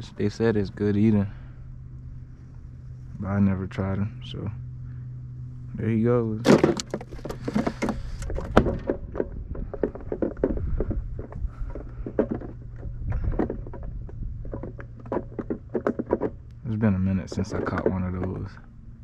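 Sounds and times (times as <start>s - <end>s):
steady low hum: 0.0s - 19.0s
cooler being handled: 6.4s - 18.6s
fishing gear clicking and rattling: 6.4s - 18.8s.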